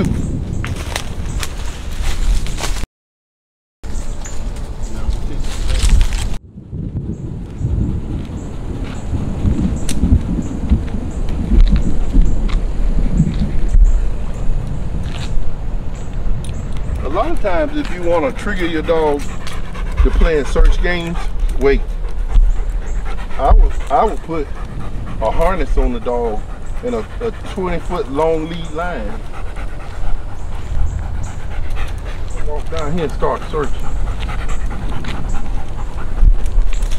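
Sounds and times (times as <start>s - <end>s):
wind buffeting microphone: 0.0s - 2.8s, 3.9s - 36.9s
dog panting: 16.8s - 36.9s.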